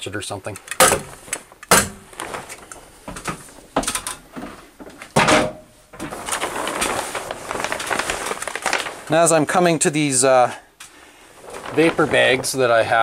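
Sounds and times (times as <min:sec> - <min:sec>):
plastic sheet rustling and crinkling: 0:01.1 - 0:05.1, 0:05.8 - 0:13.0
hammer-stapler strikes: 0:01.7 - 0:02.0.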